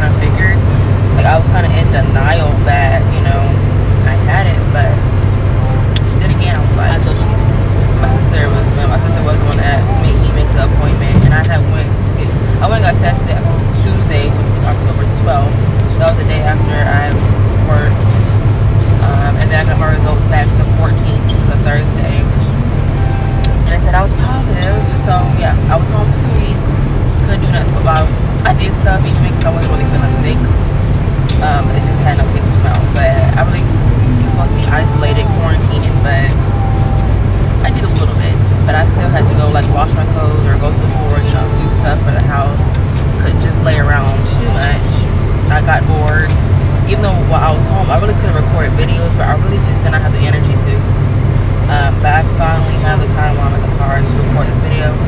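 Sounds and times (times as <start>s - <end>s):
woman talking: 0.0s - 51.0s, 51.6s - 55.0s
low bass hum: 0.0s - 55.0s
low rumble in car cabin: 0.0s - 55.0s.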